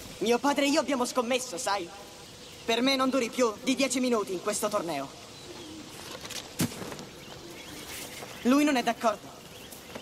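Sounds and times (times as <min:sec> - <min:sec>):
birds calling: 0:00.0 - 0:10.0
soft low cooing call: 0:05.2 - 0:06.3.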